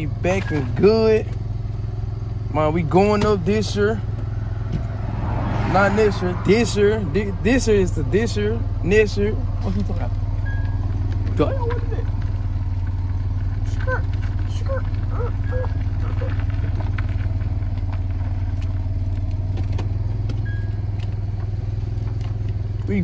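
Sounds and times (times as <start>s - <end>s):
car engine rumble inside cabin: 0.0s - 23.0s.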